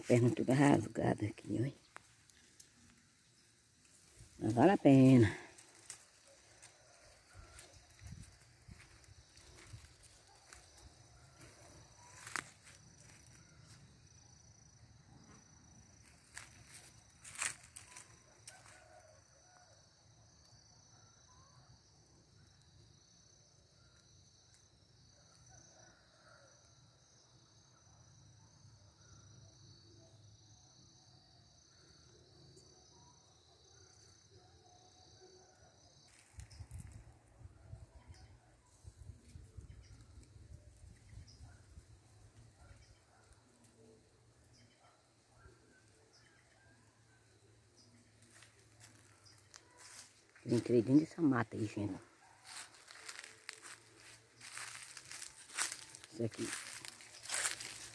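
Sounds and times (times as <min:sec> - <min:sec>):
high insect drone: 0:00.0 - 0:34.4, 0:45.7 - 0:57.9.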